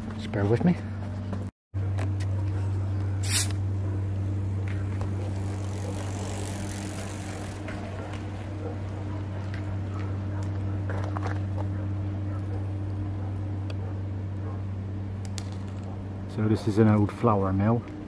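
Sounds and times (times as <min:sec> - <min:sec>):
steady low hum: 0:00.0 - 0:18.0
bicycle tyres rushing past: 0:05.1 - 0:08.6.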